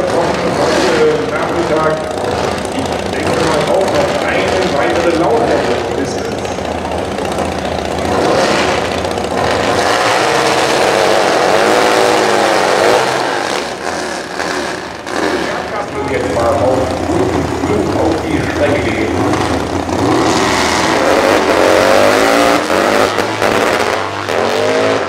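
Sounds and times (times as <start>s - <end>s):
motorcycle engine revving: 0.0s - 25.0s
motorcycle engines running: 0.0s - 25.0s.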